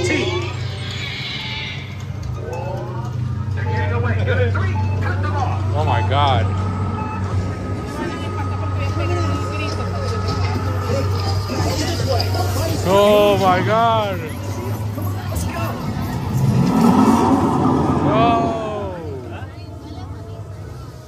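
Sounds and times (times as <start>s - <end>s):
voices: 0.0s - 21.0s
steady low hum: 15.7s - 19.8s
warbling swooping sound effects: 15.9s - 19.4s.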